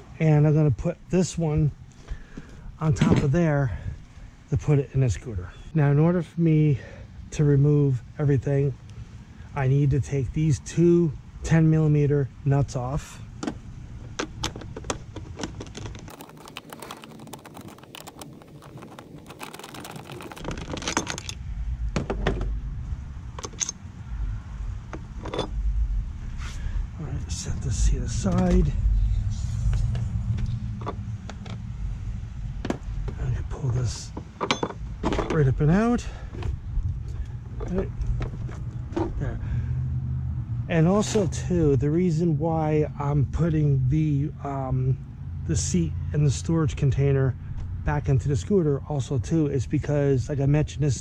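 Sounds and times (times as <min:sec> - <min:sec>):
steady low hum: 0:00.0 - 0:51.0
low rumble: 0:20.0 - 0:34.1, 0:34.8 - 0:40.8.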